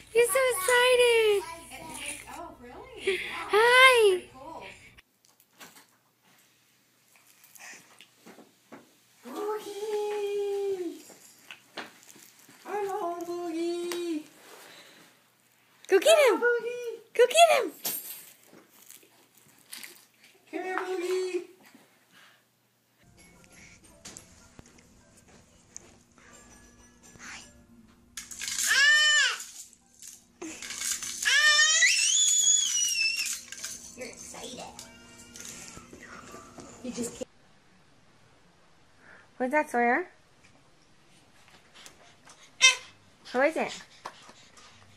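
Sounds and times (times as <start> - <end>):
baby crying out in excitement: 28.6 - 29.4, 31.2 - 33.4
toddler squealing: 31.2 - 33.4.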